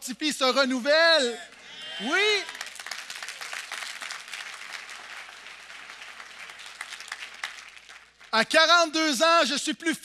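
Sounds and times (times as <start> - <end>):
crowd applauding: 1.4 - 8.6.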